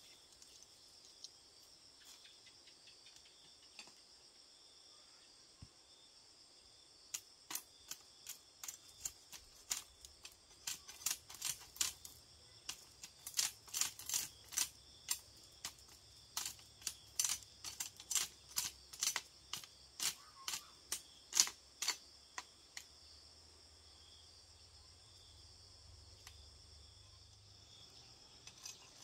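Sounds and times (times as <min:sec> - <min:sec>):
crickets buzzing: 0:00.0 - 0:29.0
machete chopping bamboo: 0:07.5 - 0:22.9.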